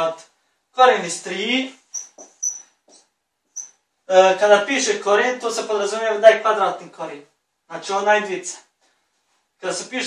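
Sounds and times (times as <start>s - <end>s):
whiteboard marker squeaking: 1.8s - 3.8s.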